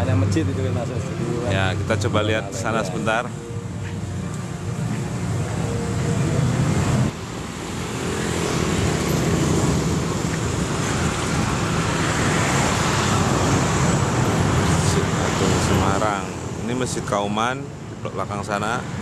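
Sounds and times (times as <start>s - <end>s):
road traffic noise: 0.0s - 19.0s.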